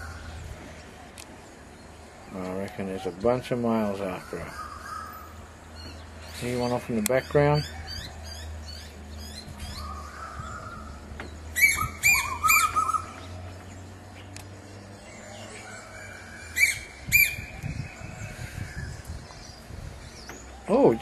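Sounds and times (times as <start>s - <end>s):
faint bird calls: 0.0s - 13.4s
crow calling loudly: 4.0s - 5.4s.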